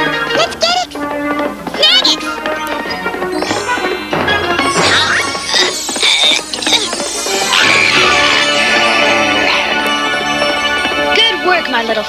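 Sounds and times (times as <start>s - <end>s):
cartoon soundtrack music: 0.0s - 12.0s
high squeaky creature chirps: 3.4s - 9.8s.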